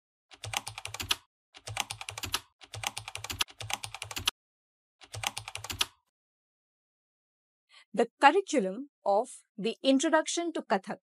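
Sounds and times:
rapid keyboard key clicks: 0.4 - 4.3, 5.0 - 6.0.

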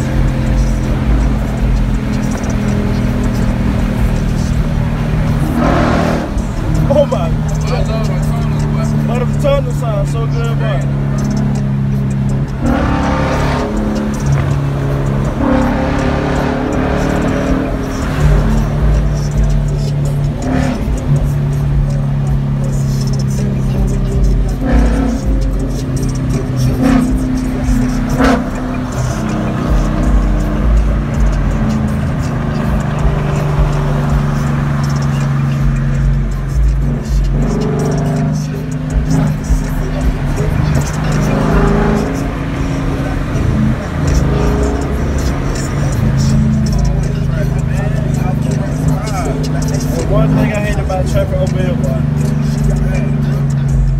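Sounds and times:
music with heavy bass line: 0.0 - 53.9
road noise: 0.0 - 53.9.

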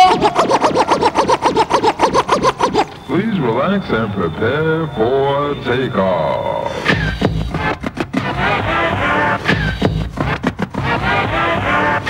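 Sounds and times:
rapid turntable scratching: 0.0 - 5.2, 5.9 - 12.0.

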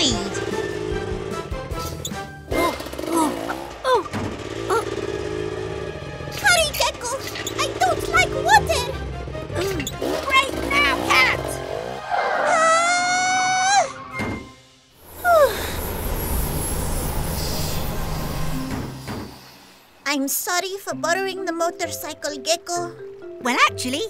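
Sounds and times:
cartoon music with vocal sounds: 1.7 - 5.0, 6.3 - 14.4
held rising note: 15.0 - 20.0.

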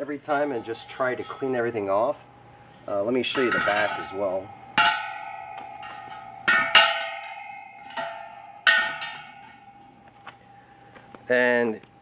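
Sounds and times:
metal wheels clanking and ringing: 0.0 - 10.5.

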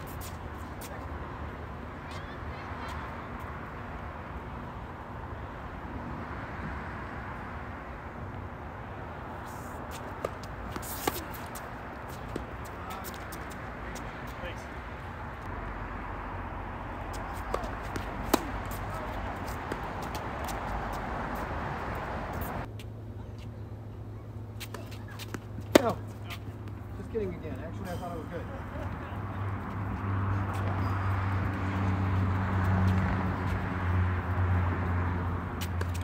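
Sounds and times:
tennis balls struck by racquets: 9.9 - 14.4, 17.1 - 22.6, 24.6 - 28.9, 35.4 - 36.0.

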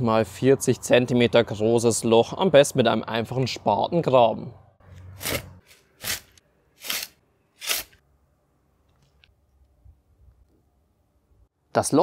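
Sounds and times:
spade cutting into turf: 5.0 - 8.0.

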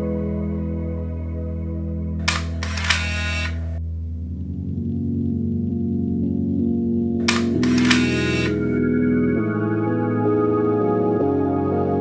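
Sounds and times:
ambient music drone: 0.0 - 12.0
camera film-advance whirring: 2.2 - 3.8, 7.2 - 8.8
camera shutter clicks: 2.2 - 3.8, 7.2 - 8.8.

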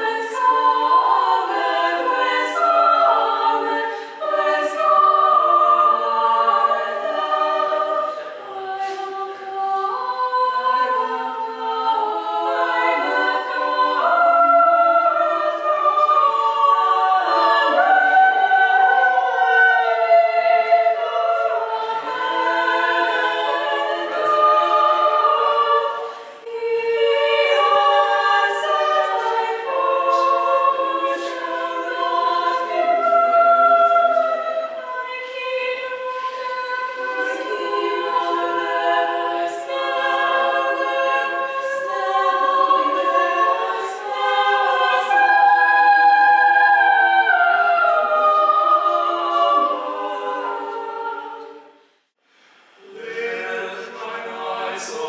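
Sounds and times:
women singing a cappella: 0.0 - 51.9.

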